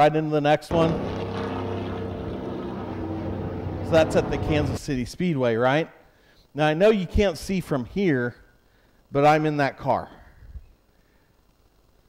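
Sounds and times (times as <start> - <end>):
race car engine running: 0.7 - 4.8.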